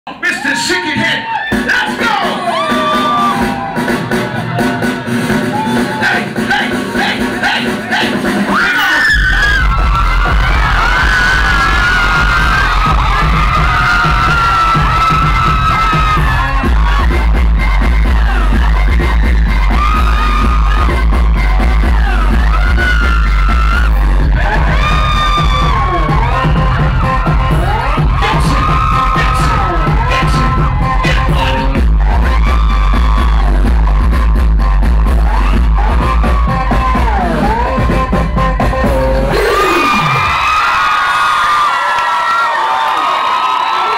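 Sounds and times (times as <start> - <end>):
heavy bass: 1.5 - 40.5.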